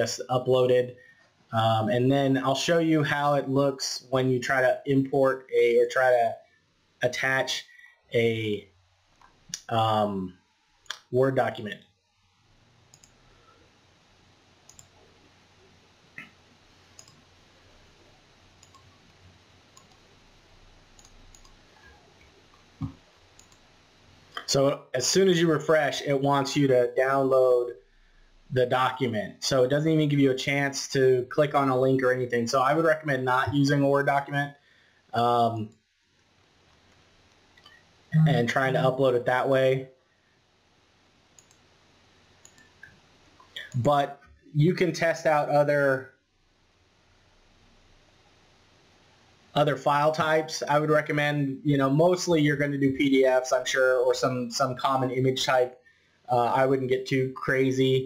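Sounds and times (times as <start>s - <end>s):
faint hum: 0.0s - 58.0s
computer mouse clicking: 12.9s - 13.2s, 14.7s - 15.0s, 17.0s - 17.2s, 18.6s - 19.1s, 19.8s - 20.1s, 21.0s - 21.6s, 22.5s - 23.7s, 41.4s - 41.6s, 42.4s - 43.8s.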